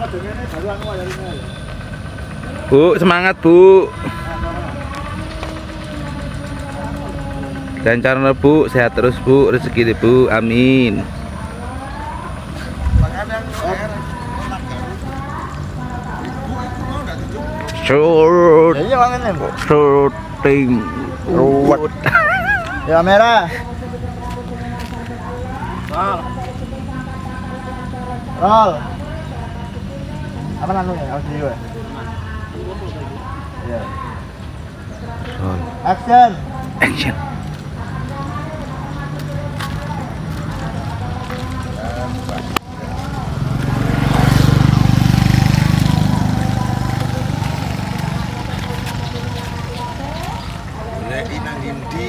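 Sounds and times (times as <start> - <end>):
motorcycle passing by: 0.0 - 52.0.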